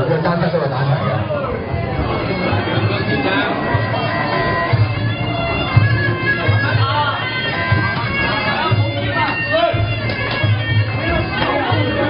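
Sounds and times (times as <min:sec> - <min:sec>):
reedy oboe melody: 0:00.9 - 0:12.0.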